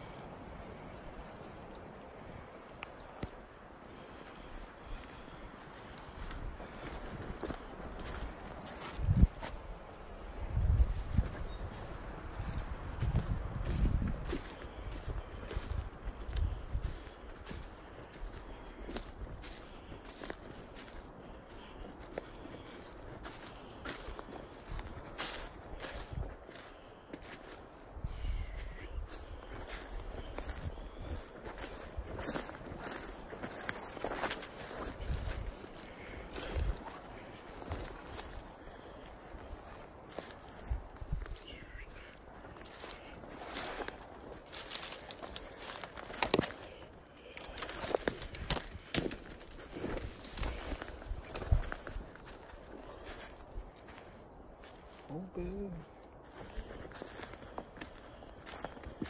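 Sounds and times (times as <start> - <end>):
footsteps through dry leaves: 3.9 - 9.7, 10.3 - 59.0.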